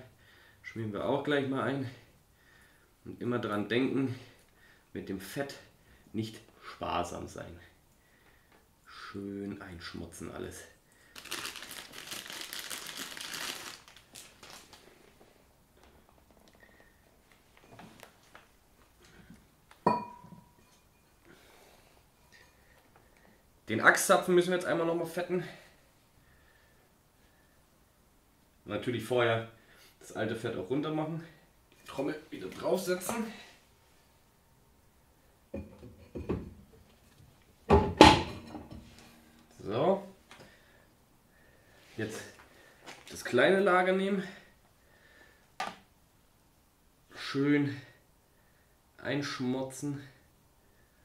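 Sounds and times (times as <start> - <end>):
plastic bag crinkling: 11.1 - 15.2.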